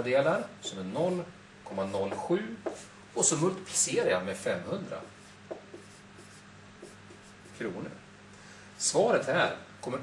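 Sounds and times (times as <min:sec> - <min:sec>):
marker writing on whiteboard: 0:01.8 - 0:02.9, 0:04.8 - 0:07.8.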